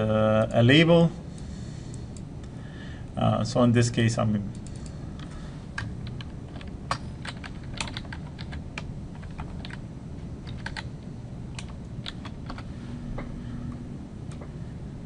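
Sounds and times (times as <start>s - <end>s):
typing on computer keyboard: 5.8s - 9.8s, 10.4s - 10.9s, 11.6s - 12.7s.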